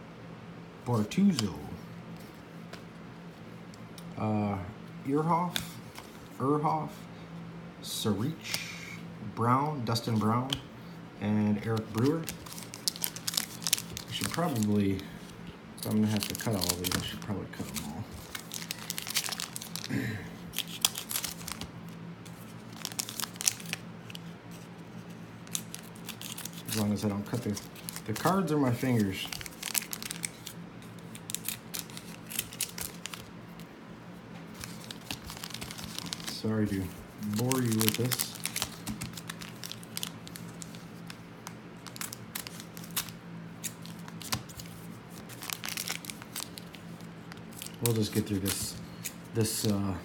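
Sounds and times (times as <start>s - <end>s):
card pack wrappers crinkling: 11.6s - 33.8s, 34.5s - 49.8s.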